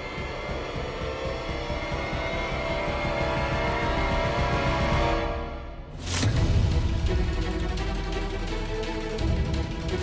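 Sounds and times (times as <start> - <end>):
tense dramatic score: 0.0 - 10.0.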